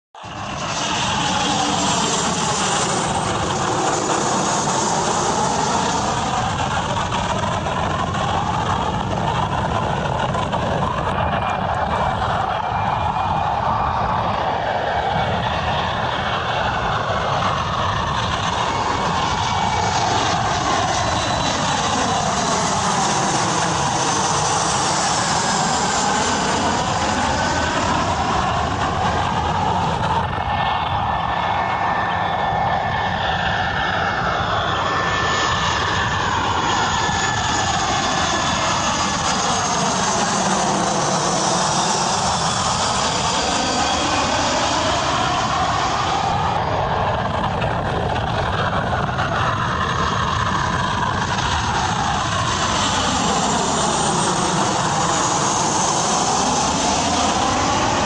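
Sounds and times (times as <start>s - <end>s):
airplane engine rushing: 0.2s - 58.0s.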